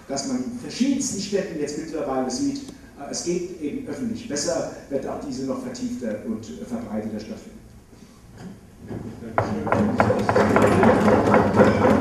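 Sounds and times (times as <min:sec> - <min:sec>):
audience applauding: 0:09.6 - 0:12.0.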